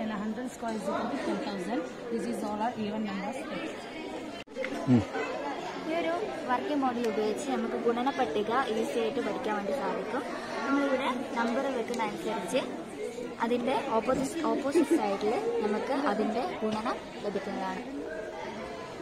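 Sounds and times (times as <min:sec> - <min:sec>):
voices chattering: 0:00.0 - 0:19.0.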